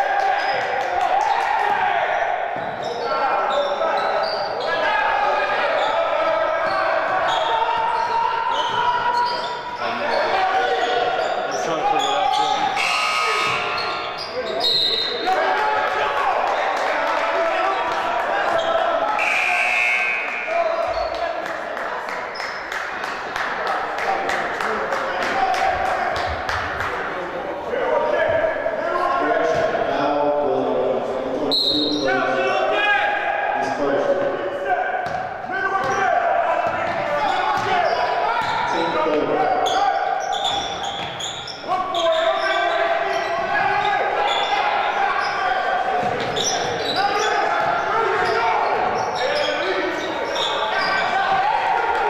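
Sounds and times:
voices echoing in a hall: 0:00.0 - 0:52.0.

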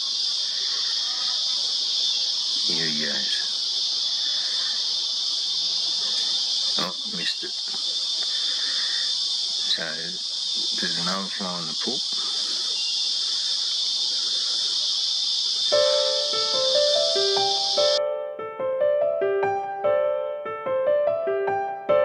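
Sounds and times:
high-pitched insect chorus: 0:00.0 - 0:18.0
voices: 0:00.0 - 0:18.0.

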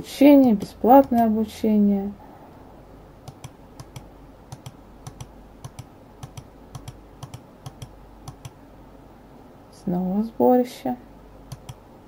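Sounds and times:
computer mouse clicking: 0:00.6 - 0:01.3, 0:03.2 - 0:08.6, 0:11.5 - 0:11.8.

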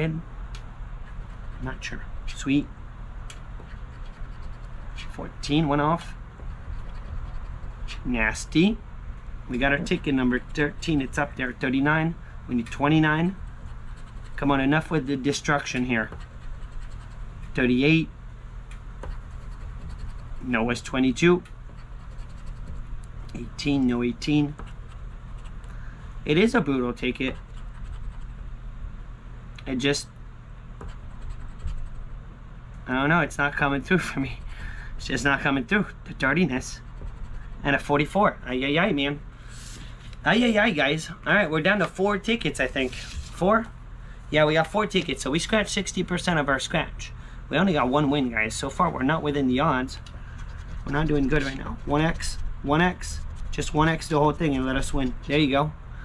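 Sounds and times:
coin scratching lottery ticket: 0:03.6 - 0:05.2, 0:06.0 - 0:08.1, 0:12.6 - 0:14.7, 0:15.6 - 0:17.3, 0:19.0 - 0:20.5, 0:21.7 - 0:22.9, 0:27.1 - 0:28.4, 0:30.8 - 0:32.0, 0:36.6 - 0:37.8, 0:49.9 - 0:54.1.

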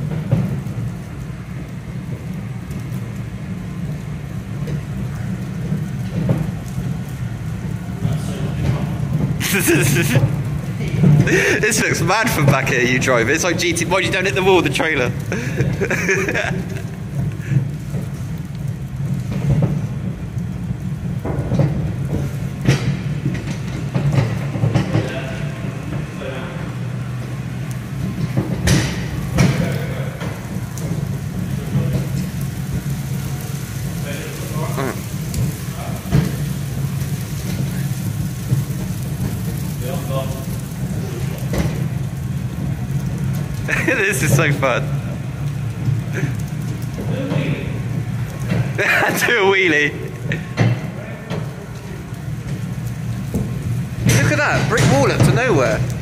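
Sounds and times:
tow tractor humming: 0:00.0 - 0:39.8
trailer rattling over floor: 0:00.0 - 0:56.0.

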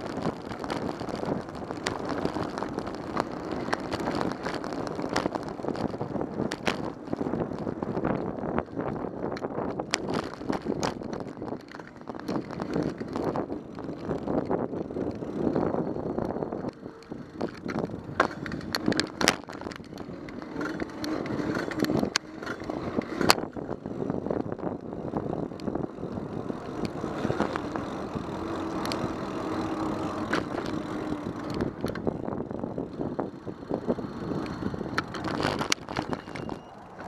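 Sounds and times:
bicycle tyre road noise: 0:00.0 - 0:37.0
wheels knocking over railway tracks: 0:00.0 - 0:37.0.

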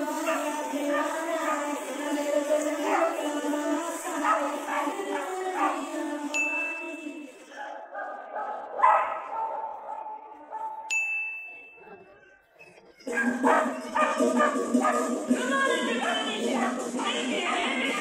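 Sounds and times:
dog bark: 0:02.8 - 0:03.2, 0:04.2 - 0:05.9, 0:07.5 - 0:10.9, 0:13.1 - 0:15.1.

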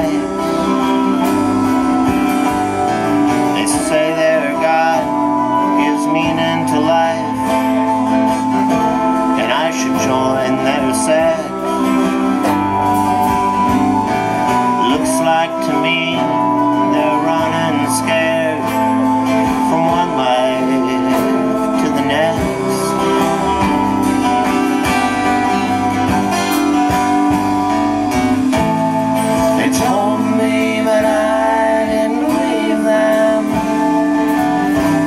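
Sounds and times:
live band playing: 0:00.0 - 0:35.0
strummed guitar chords: 0:00.0 - 0:35.0.

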